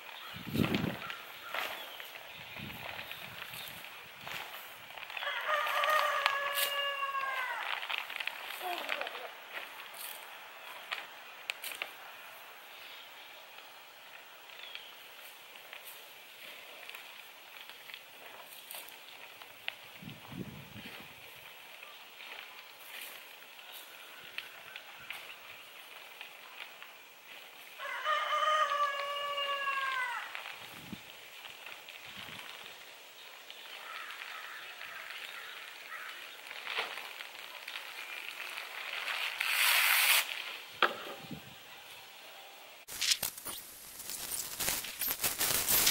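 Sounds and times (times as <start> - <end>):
plastic sheeting rustling: 0.2 - 12.0, 15.0 - 40.7, 42.9 - 45.9
rooster crowing: 5.2 - 7.9, 27.8 - 30.5.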